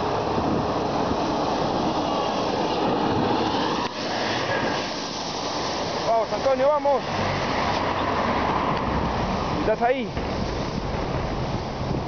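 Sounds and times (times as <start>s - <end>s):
road traffic rumble: 0.0s - 12.0s
wind rushing over microphone: 0.0s - 12.0s.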